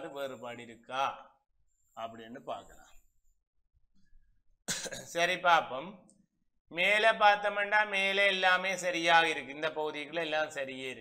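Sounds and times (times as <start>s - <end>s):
man coughing: 4.7s - 5.2s.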